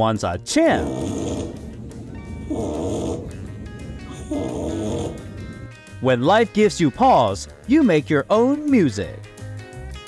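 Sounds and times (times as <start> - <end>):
puppy snoring: 0.7 - 1.8, 2.5 - 3.5, 4.2 - 5.7.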